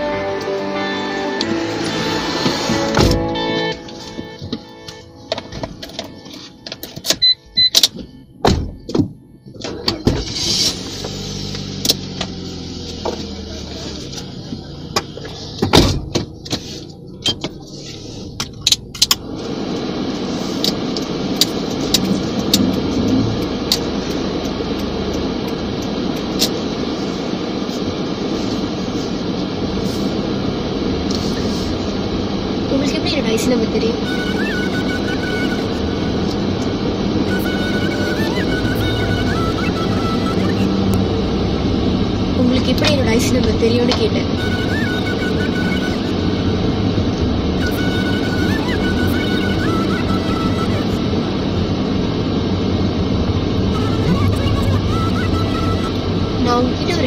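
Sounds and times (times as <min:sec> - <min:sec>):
music: 0:00.0 - 0:07.4, 0:34.0 - 0:35.7, 0:37.3 - 0:40.4
car cabin hum while driving: 0:00.0 - 0:57.0
car door clicks and thuds: 0:02.7 - 0:03.3, 0:05.3 - 0:10.4, 0:14.9 - 0:16.6.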